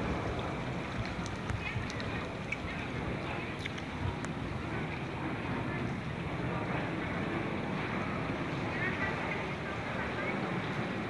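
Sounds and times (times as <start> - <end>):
floodwater rushing: 0.0 - 11.0.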